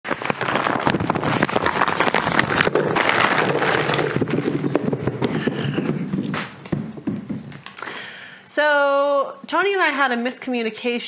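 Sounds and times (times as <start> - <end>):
potatoes knocking and thudding: 0.0 - 7.9.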